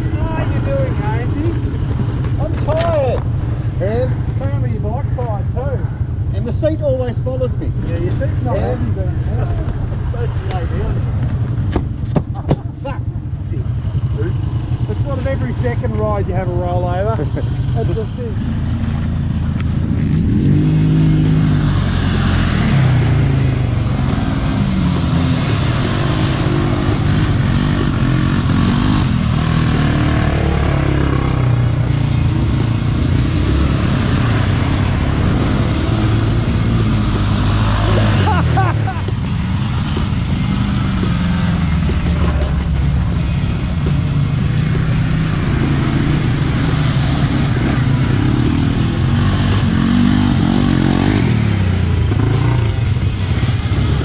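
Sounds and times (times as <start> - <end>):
people talking: 0.0 - 1.6, 2.4 - 3.2, 3.8 - 11.1, 12.4 - 18.4, 37.8 - 39.1
quad bike engine idling: 11.2 - 54.0.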